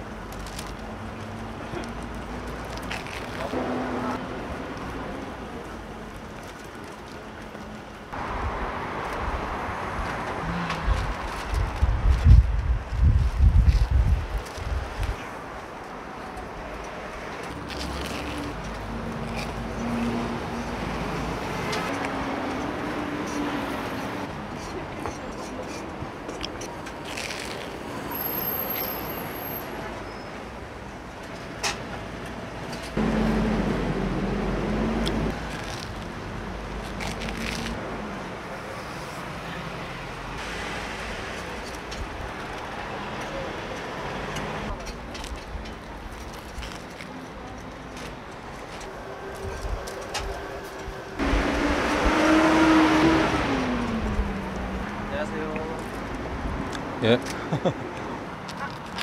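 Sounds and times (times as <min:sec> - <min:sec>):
steady traffic hum: 0:00.0 - 0:59.0
vehicles passing by: 0:00.0 - 0:59.0.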